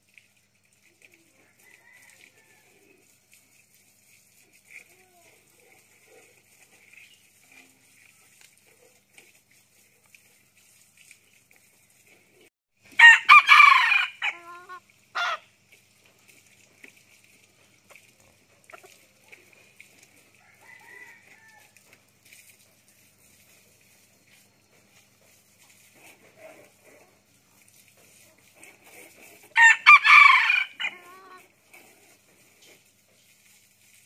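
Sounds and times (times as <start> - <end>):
rooster crowing: 1.4 - 2.9, 13.0 - 15.4, 20.4 - 21.8, 29.6 - 31.4.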